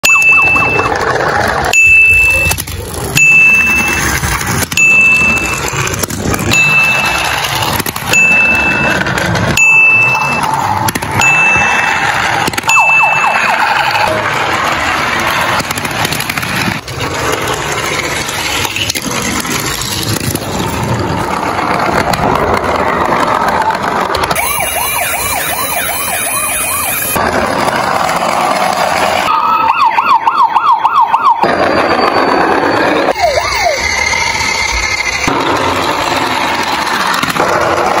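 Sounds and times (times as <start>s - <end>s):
high electronic beep: 0.0s - 1.0s, 1.8s - 2.6s, 3.2s - 4.1s, 4.7s - 5.7s, 6.5s - 9.0s, 9.6s - 10.5s, 11.2s - 12.0s, 12.7s - 14.1s, 24.4s - 27.2s, 29.3s - 34.1s
fast warbling siren: 0.0s - 2.6s, 10.0s - 14.6s, 24.2s - 27.8s, 29.2s - 35.3s.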